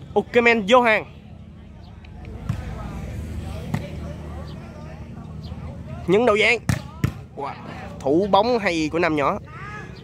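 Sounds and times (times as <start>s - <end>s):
faint crowd chatter: 0.0s - 10.0s.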